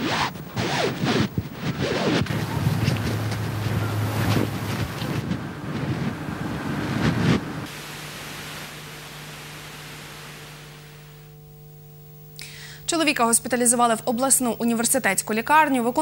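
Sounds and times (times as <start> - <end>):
gusty wind on microphone: 0.0 - 7.7.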